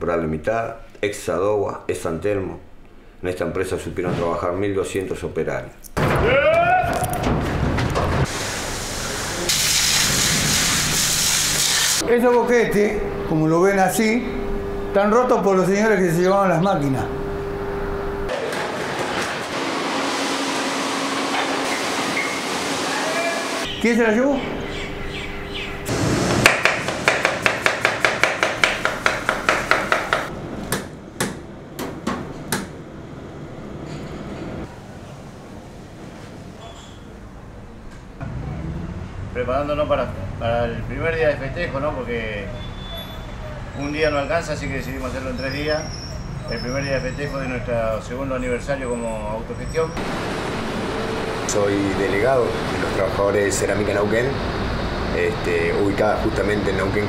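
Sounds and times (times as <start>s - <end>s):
water spray hissing: 8.3s - 12.0s
sharp knocks: 26.3s - 32.7s.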